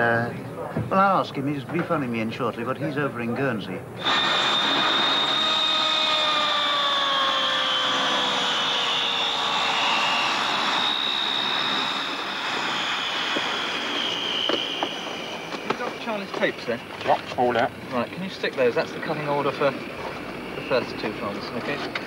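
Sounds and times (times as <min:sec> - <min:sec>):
high engine whine: 0:03.9 - 0:22.0
propeller airliner engines running: 0:03.9 - 0:22.0.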